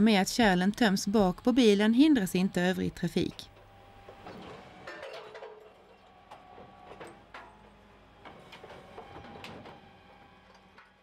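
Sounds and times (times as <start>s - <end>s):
faint machine hum: 0.0s - 11.0s.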